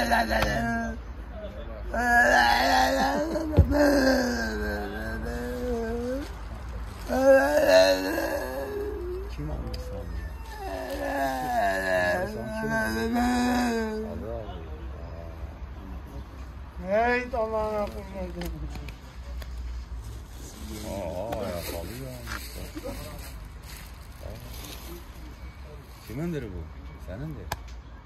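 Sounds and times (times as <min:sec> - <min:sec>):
person making soft vocal sounds: 0:01.9 - 0:10.0
man talking: 0:20.6 - 0:23.4.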